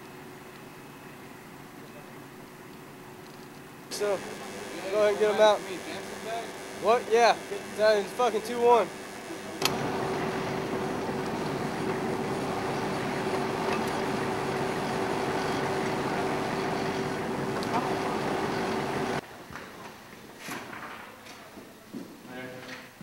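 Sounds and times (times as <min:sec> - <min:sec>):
diesel engine idling: 0:09.6 - 0:19.2.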